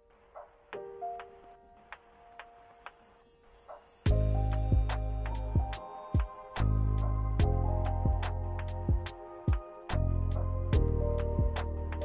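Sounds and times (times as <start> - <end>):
faint soft music: 0.0 - 12.0.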